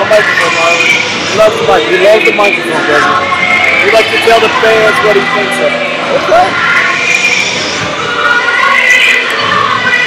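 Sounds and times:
crowd noise: 0.0 - 10.0
music playing: 0.0 - 10.0.

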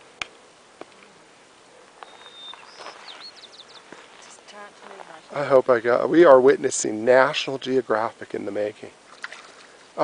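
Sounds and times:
lakeside ambience: 0.0 - 10.0
faint bird calls: 0.4 - 5.4.

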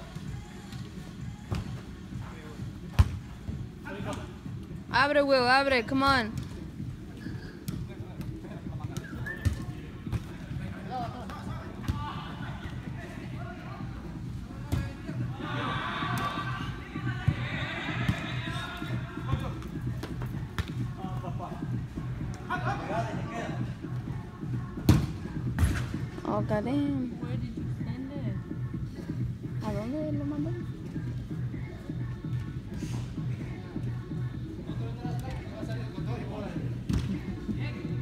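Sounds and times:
ball kicked thuds: 2.9 - 3.6, 24.8 - 26.0
players shouting with echo: 15.2 - 19.3.

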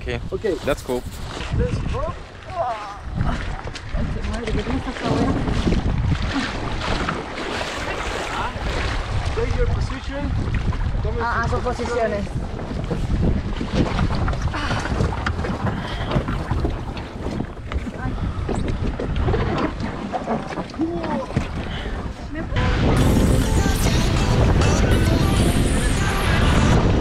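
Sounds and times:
water moving around raft: 0.0 - 27.0
wind buffeting microphone: 0.0 - 27.0.

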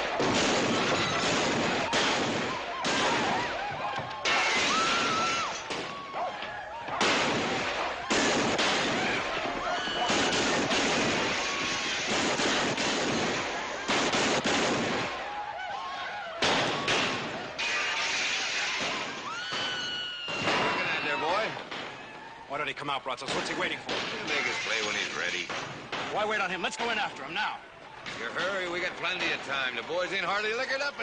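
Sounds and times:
gunshots: 0.0 - 6.2, 6.8 - 15.4, 16.4 - 22.0, 23.2 - 27.0
noisy din of riders: 0.0 - 31.0
men yelling and whooping: 1.0 - 11.9, 15.0 - 17.6.

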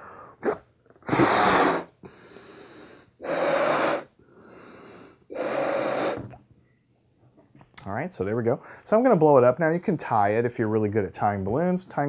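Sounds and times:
balloon being blown up: 0.4 - 2.0, 3.2 - 4.1, 5.3 - 6.4.

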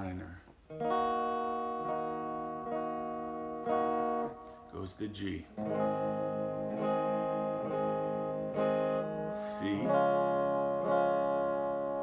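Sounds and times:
electric guitar strumming chord: 0.7 - 12.0.

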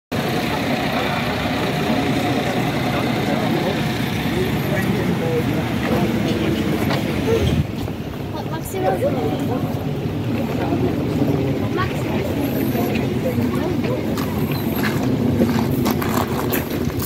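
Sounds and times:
road traffic: 0.1 - 17.0
people talking: 0.2 - 16.7.

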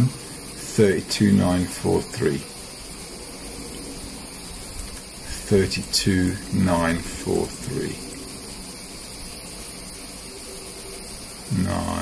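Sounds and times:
person speaking: 0.0 - 2.5, 5.2 - 8.1, 11.5 - 12.0
faint low hum: 0.0 - 12.0
steady background hiss: 0.0 - 12.0.

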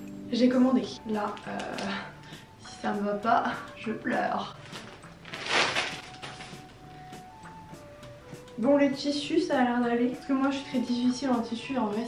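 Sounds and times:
faint background music: 0.0 - 12.0
plastic bag rustling and crinkling: 4.4 - 6.9.

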